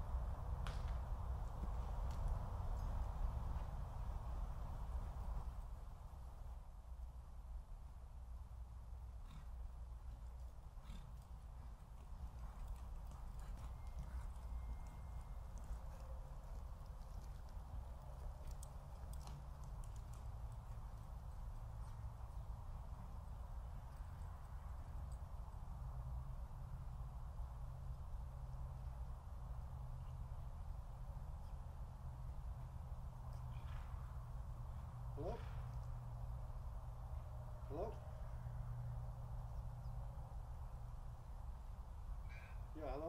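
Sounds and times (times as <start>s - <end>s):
horse hoofbeats on dirt: 9.2s - 25.6s, 32.4s - 36.1s.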